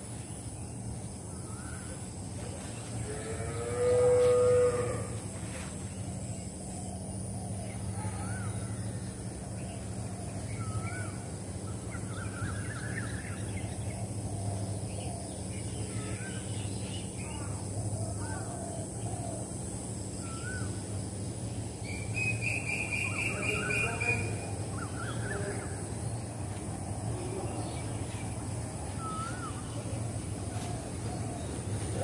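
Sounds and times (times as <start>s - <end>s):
steady low hum: 0.0s - 32.0s
bird trill: 21.8s - 25.7s
birds chirping and calling: 21.8s - 32.0s.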